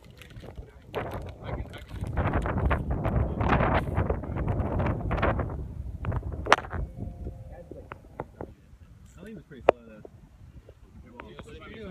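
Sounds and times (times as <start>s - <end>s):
wind buffeting microphone: 0.0s - 11.9s.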